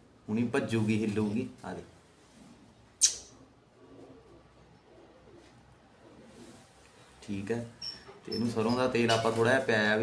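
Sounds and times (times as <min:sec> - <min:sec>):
pigeons cooing: 0:02.5 - 0:07.1
sharp click: 0:03.0 - 0:03.3.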